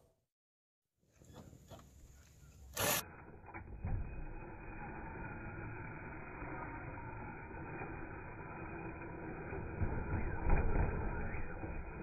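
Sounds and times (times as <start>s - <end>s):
toy car motor whine: 2.6s - 12.0s.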